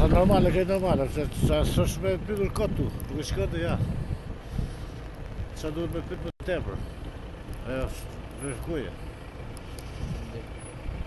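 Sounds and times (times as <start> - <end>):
vehicle engine idling: 0.0 - 11.0.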